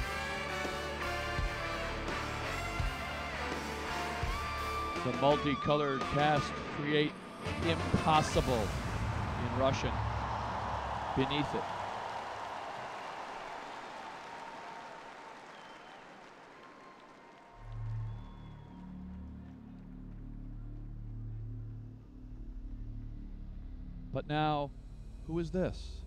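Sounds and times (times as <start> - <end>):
stadium crowd applause: 9.2 - 20.8
deep sustained music chords: 17.6 - 26.0.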